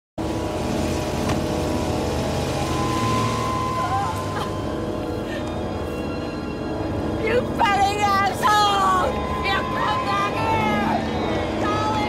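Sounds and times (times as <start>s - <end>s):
car driving on road: 0.2s - 12.0s
film music: 0.2s - 12.0s.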